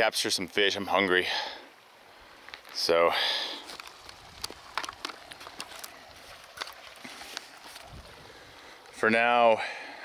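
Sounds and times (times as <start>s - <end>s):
footsteps on grass and snow: 3.5s - 8.3s.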